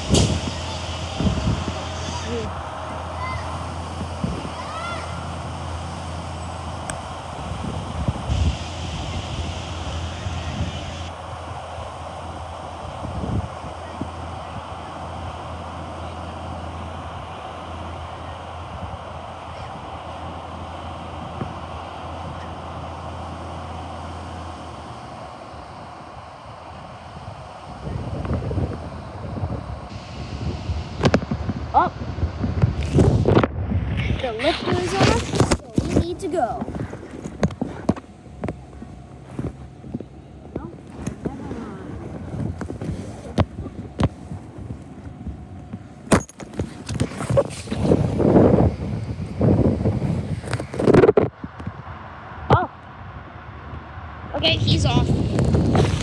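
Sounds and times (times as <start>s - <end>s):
garbage truck engine running: 0.0s - 56.0s.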